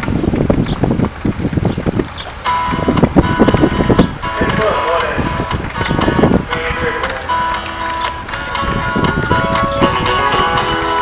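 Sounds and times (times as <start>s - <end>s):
wind buffeting microphone: 0.0s - 11.0s
music over loudspeakers: 2.4s - 11.0s.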